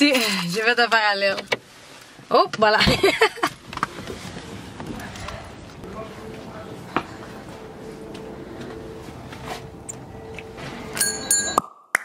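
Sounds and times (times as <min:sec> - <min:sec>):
woman laughing: 0:02.7 - 0:03.6.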